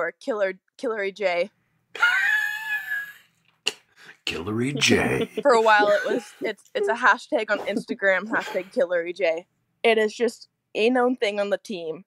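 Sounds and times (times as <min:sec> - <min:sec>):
woman squealing: 0:02.0 - 0:03.3.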